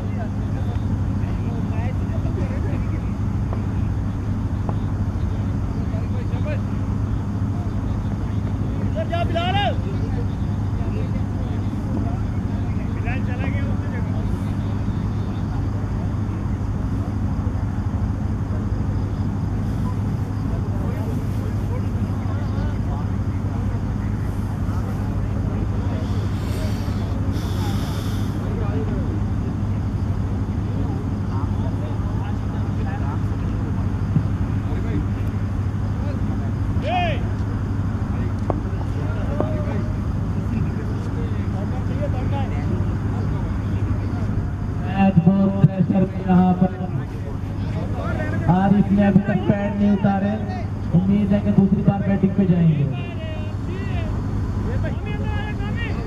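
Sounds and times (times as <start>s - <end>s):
distant voices: 0.0s - 56.0s
steady low hum: 0.0s - 56.0s.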